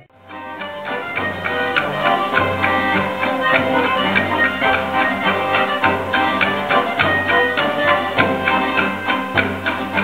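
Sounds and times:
folk ensemble music: 0.0s - 10.0s
plucked string instruments: 0.0s - 10.0s
accordion: 0.2s - 10.0s.

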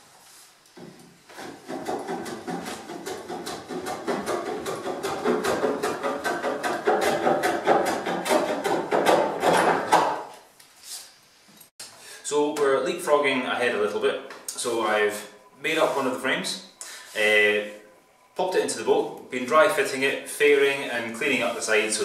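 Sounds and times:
hand plane shaving wood: 1.3s - 9.9s.

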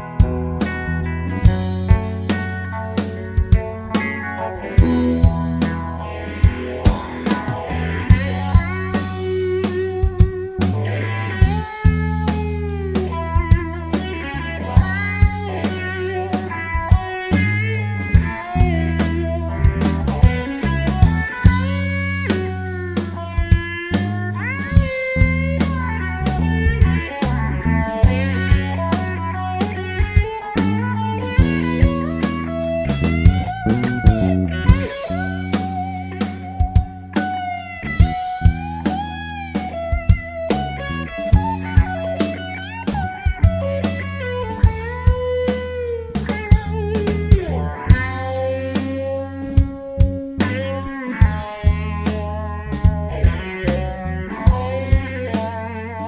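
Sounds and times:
bass guitar line: 0.0s - 56.0s
drum kit: 0.0s - 56.0s
electric guitar solo: 0.0s - 56.0s.

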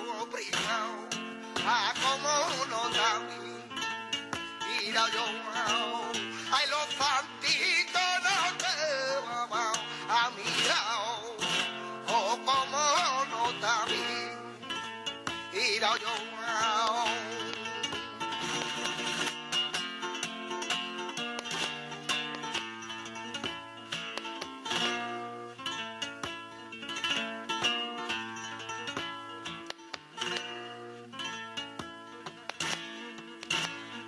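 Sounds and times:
flamenco guitar: 0.0s - 34.0s.

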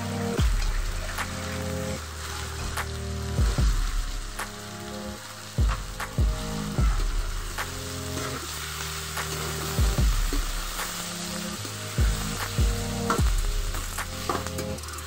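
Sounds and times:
background music with beat: 0.0s - 15.0s
chicken sizzling in a wok: 0.0s - 15.0s.

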